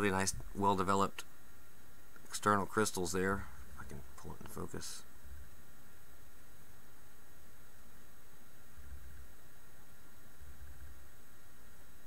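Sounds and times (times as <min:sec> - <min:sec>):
faint low rumbles: 0:00.0 - 0:11.4
steady hiss: 0:00.0 - 0:12.0.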